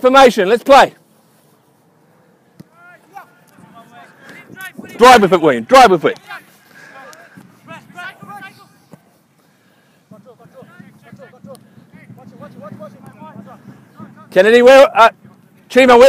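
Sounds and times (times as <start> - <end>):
distant voices calling: 1.0 - 16.0.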